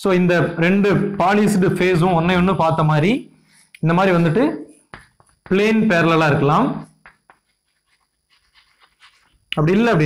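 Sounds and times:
chalk tapping and scratching on blackboard: 4.7 - 5.8, 6.8 - 9.5.

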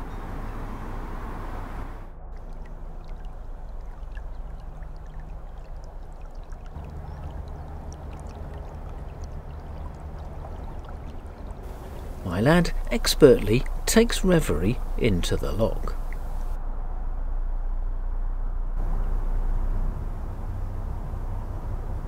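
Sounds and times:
diesel engine humming: 0.0 - 6.0, 6.8 - 22.0
water trickling and pouring: 1.9 - 16.6.

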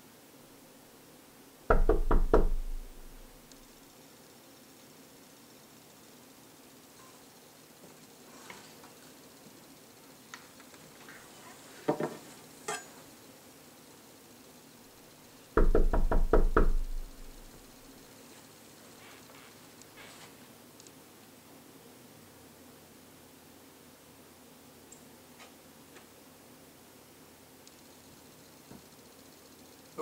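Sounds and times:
knocking on door: 1.7 - 3.2, 15.6 - 17.5.

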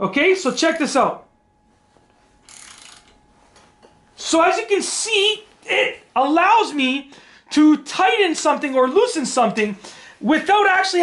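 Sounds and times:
ratchet wrench clicking: 2.5 - 3.1.

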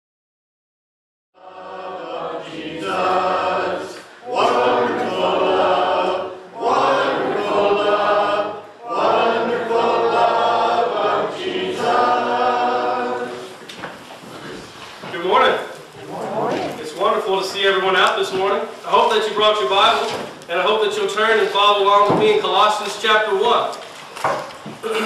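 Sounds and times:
congregation singing a hymn: 1.4 - 15.5.

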